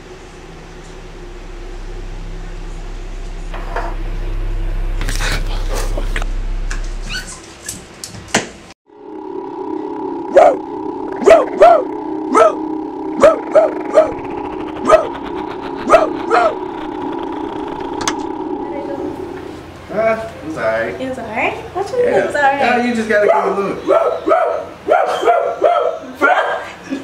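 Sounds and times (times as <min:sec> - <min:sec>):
steady low hum: 0:00.0 - 0:07.6, 0:08.9 - 0:23.9
dog-like barks: 0:23.2 - 0:26.8.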